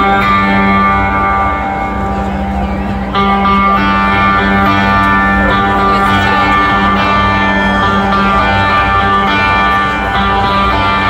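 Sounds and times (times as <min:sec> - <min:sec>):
guitar picking slow arpeggio: 0:00.0 - 0:11.0.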